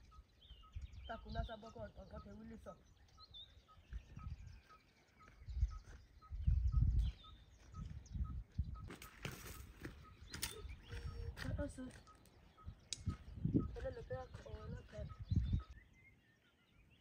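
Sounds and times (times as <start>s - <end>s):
bird repeating high note: 10.3s - 12.7s.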